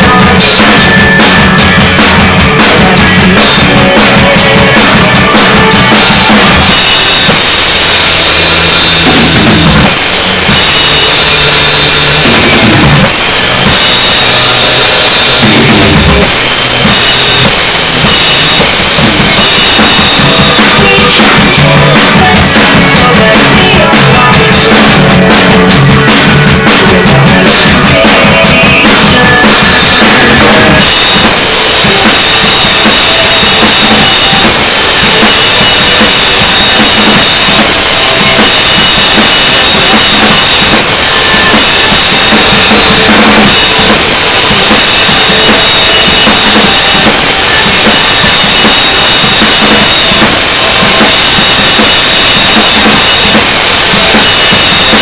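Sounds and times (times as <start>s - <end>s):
snare drum: 0.0s - 11.0s, 12.2s - 55.0s
bass drum: 0.0s - 55.0s
cymbals: 0.0s - 55.0s
rock band recording: 0.0s - 55.0s.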